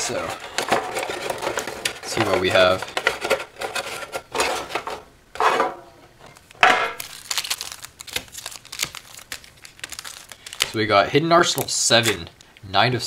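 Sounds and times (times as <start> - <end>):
foil packs crinkling: 0.0 - 4.8, 6.4 - 12.3.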